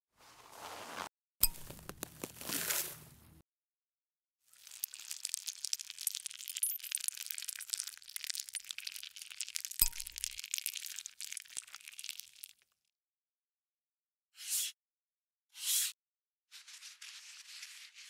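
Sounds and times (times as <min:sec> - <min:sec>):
tweezers crackling on gunk: 0:04.7 - 0:11.4.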